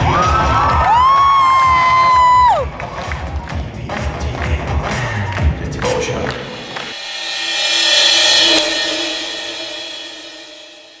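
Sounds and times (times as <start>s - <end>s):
cymbal-like hiss swell: 6.5s - 11.0s.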